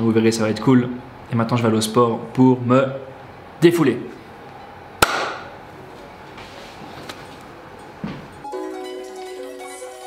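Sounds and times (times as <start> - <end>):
sharp knock: 5.0 - 5.5.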